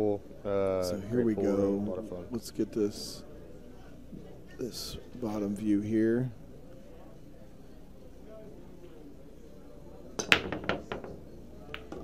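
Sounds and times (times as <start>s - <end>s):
cue ball cracking into rack: 10.2s - 12.0s
pool balls clicking: 10.2s - 12.0s.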